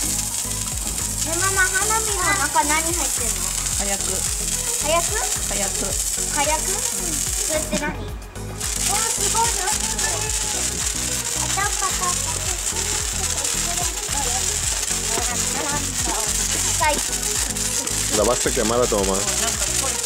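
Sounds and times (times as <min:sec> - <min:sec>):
background music: 0:00.0 - 0:20.0
sparklers fizzing: 0:00.0 - 0:20.0
voices: 0:00.0 - 0:20.0.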